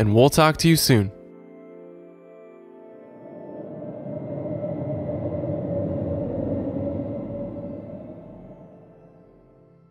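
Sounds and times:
low rumbling logo sound effect: 0:03.0 - 0:09.4.

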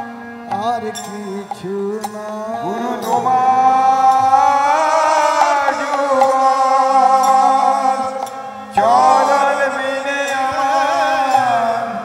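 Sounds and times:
harmonium holding notes: 0:00.0 - 0:12.0
male chorus chanting: 0:00.0 - 0:12.0.

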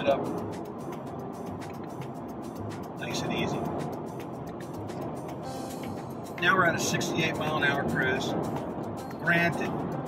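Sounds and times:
in-cabin road and engine noise: 0:00.0 - 0:10.0.

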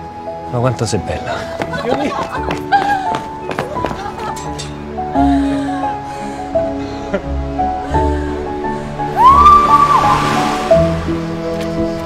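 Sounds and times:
film music with held notes: 0:00.0 - 0:12.0.

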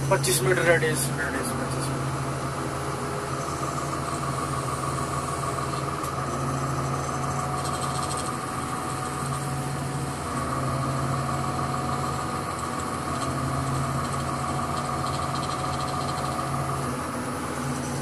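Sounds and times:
crane engine idling: 0:00.0 - 0:18.0.

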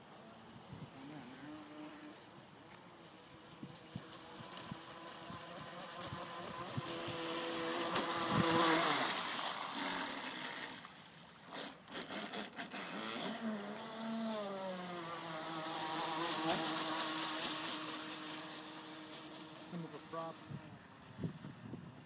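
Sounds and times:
rc boat motor whining: 0:00.8 - 0:21.5.

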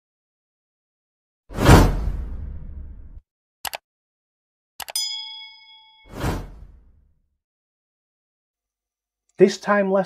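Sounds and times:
notification bell ding: 0:04.9 - 0:06.4.

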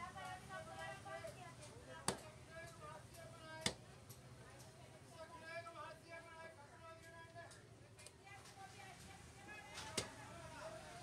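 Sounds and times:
knife chopping fish on wood: 0:02.0 - 0:02.3, 0:03.6 - 0:03.8.

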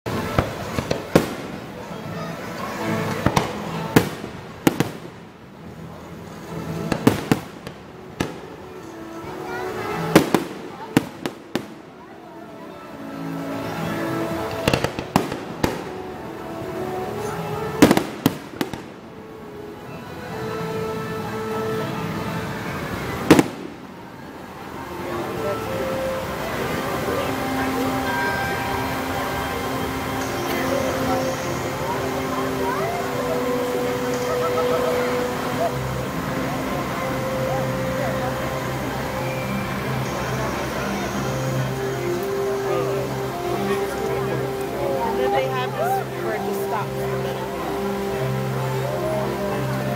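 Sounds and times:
fireworks bursting with bangs: 0:00.1 - 0:05.4, 0:06.4 - 0:08.9, 0:09.7 - 0:12.0, 0:14.3 - 0:16.2, 0:17.1 - 0:19.2, 0:23.2 - 0:24.0
voices: 0:00.1 - 0:49.9.

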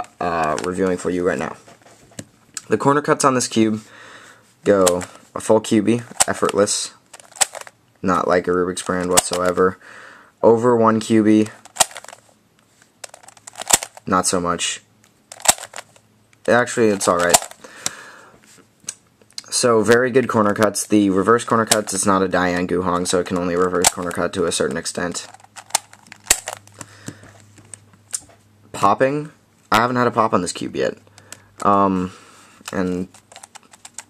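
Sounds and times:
plastic puzzle cube clicking: 0:06.2 - 0:07.7, 0:11.6 - 0:12.2, 0:13.0 - 0:14.0, 0:15.3 - 0:16.0, 0:17.0 - 0:17.6, 0:25.3 - 0:26.9, 0:32.7 - 0:34.0.

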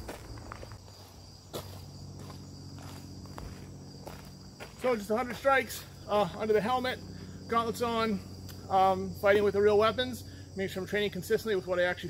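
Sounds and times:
faint low hum: 0:00.0 - 0:12.0
insects chirring: 0:00.0 - 0:12.0.

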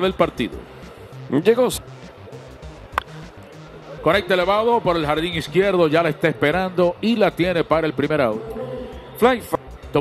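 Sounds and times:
music with low beat: 0:00.0 - 0:10.0.

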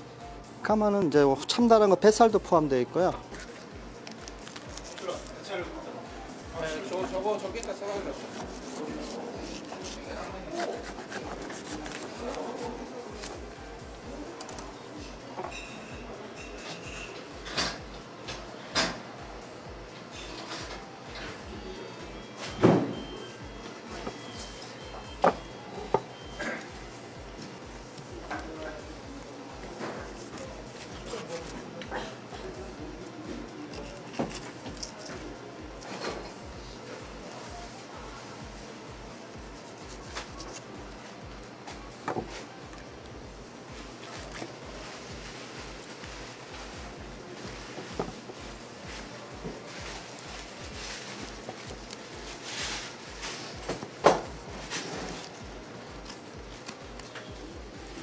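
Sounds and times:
soft rubbing of fish: 0:07.8 - 0:13.2
knife cutting fish: 0:08.0 - 0:13.4.

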